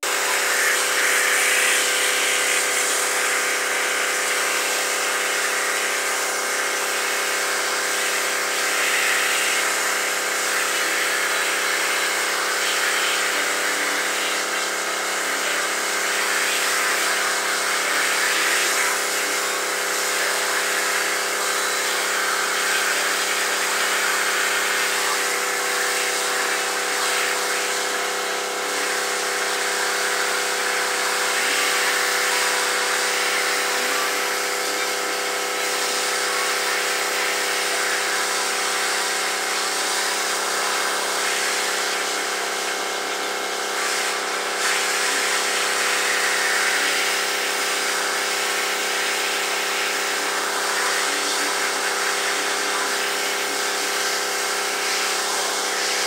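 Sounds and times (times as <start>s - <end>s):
hose nozzle spraying water: 0.0s - 56.0s.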